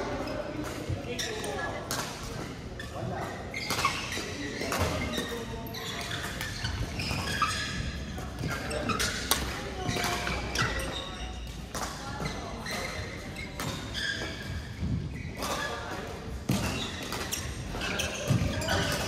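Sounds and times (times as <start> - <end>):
rackets hitting shuttlecocks: 8.1 - 12.1.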